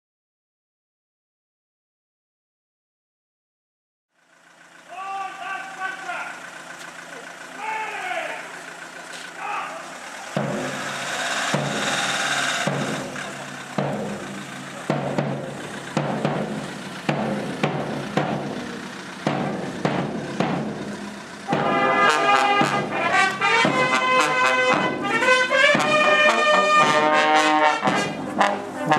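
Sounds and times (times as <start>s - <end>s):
crowd voices: 4.9s - 28.9s
marching band drums: 10.3s - 28.9s
brass instruments playing: 21.5s - 28.9s.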